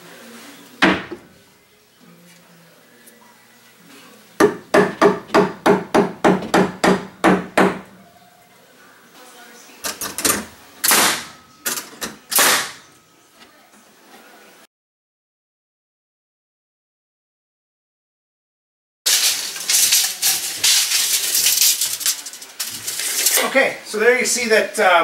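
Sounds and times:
hammer striking wood: 4.4 - 7.9.

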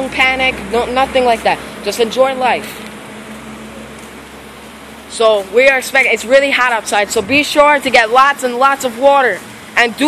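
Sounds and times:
street background hiss: 0.0 - 10.0.

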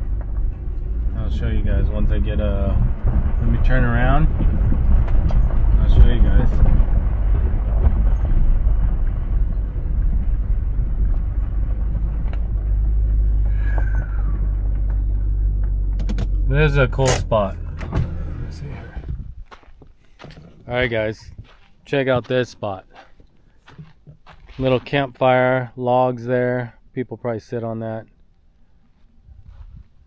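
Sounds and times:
car engine and tyres rumbling: 0.0 - 25.6.

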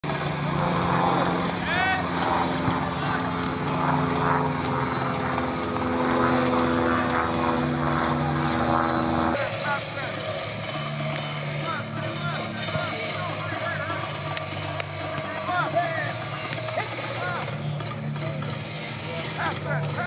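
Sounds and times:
steady mechanical drone: 0.0 - 20.0.

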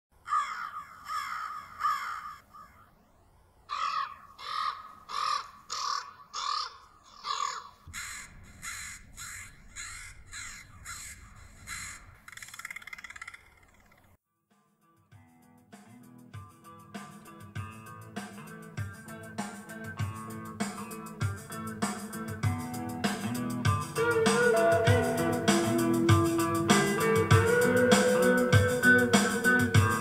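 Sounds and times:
crows cawing: 0.2 - 2.9, 3.7 - 13.3.

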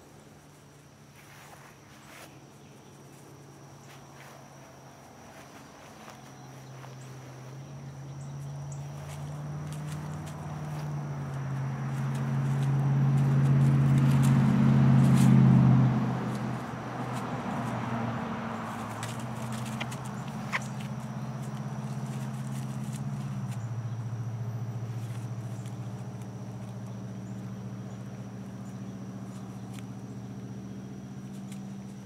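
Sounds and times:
low motor hum: 0.0 - 32.0
dry leaves rustling: 0.1 - 32.0.

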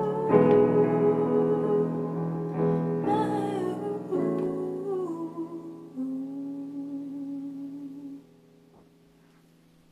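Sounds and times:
held piano chord: 0.0 - 6.3
faint room noise: 0.0 - 9.9.

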